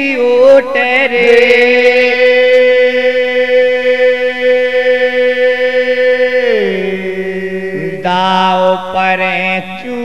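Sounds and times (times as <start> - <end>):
higher voice singing: 0.0 - 10.0
man singing long note: 0.0 - 10.0.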